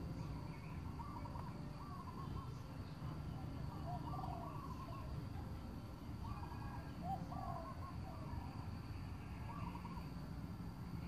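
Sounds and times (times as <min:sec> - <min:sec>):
birds calling: 0:00.0 - 0:10.2.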